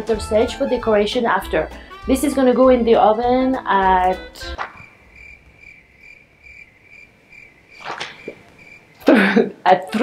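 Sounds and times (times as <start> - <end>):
cricket chirping: 4.4 - 9.2
brief rustle: 7.8 - 8.5.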